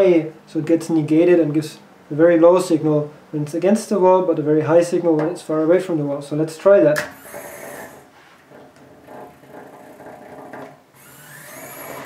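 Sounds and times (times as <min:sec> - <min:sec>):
small electric motor whirring: 0:07.1 - 0:08.1, 0:09.0 - 0:12.0.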